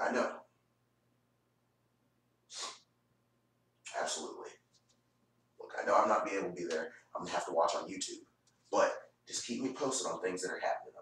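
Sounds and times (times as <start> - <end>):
man's wordless voiced sound: 0.0 - 0.5, 3.9 - 4.5, 5.6 - 11.0
man's sharp breathy burst: 2.5 - 2.9.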